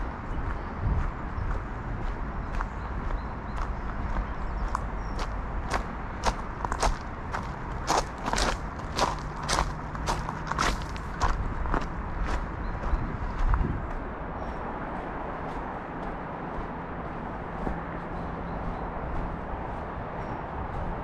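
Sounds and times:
footsteps on gravel and leaves: 0:02.4 - 0:21.0.

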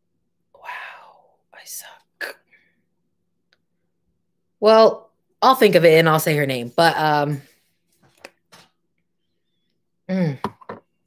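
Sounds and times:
woman whispering: 0:00.6 - 0:02.5.

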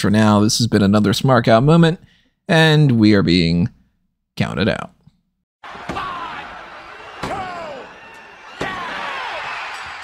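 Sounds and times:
crowd shouting along: 0:05.6 - 0:10.0
steady crowd noise: 0:05.6 - 0:10.0.

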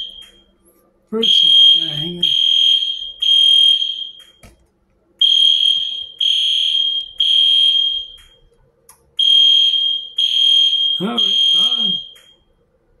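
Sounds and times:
alarm shrill beeps: 0:09.2 - 0:12.3.

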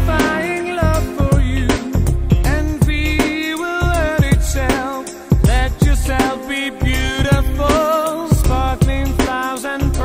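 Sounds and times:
person singing: 0:00.0 - 0:10.0
pop christmas song: 0:00.0 - 0:10.0
steady drum beat: 0:00.0 - 0:10.0.

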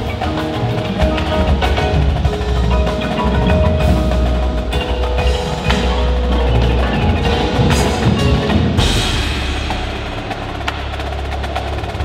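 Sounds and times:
marimba and vibraphone: 0:00.0 - 0:11.1
cymbals: 0:00.0 - 0:12.0
drums: 0:00.0 - 0:12.0.

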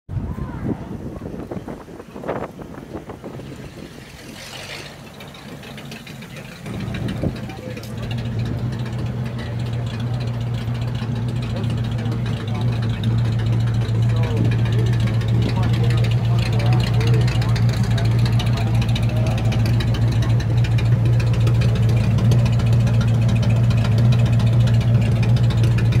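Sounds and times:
car engine idling: 0:00.1 - 0:26.0.

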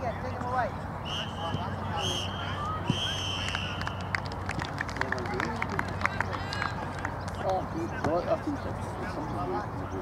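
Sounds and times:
distant young voices calling: 0:00.0 - 0:04.2.

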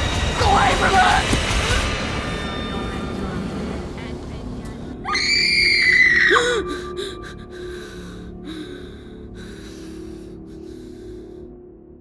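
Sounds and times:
low dark drone: 0:00.0 - 0:12.0
woman screaming: 0:05.0 - 0:06.7.

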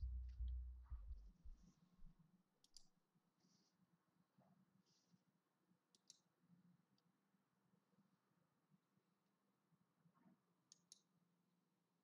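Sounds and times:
computer mouse clicks: 0:02.6 - 0:02.9, 0:05.9 - 0:06.2, 0:10.7 - 0:11.1.

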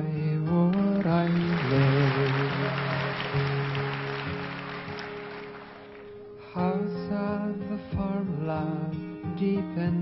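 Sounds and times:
person singing folk song: 0:00.0 - 0:05.0, 0:06.3 - 0:10.0
acoustic guitar chord ringing: 0:00.4 - 0:10.0.

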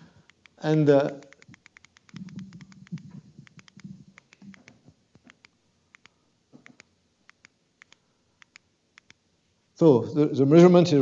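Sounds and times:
button clicks: 0:00.3 - 0:09.2.

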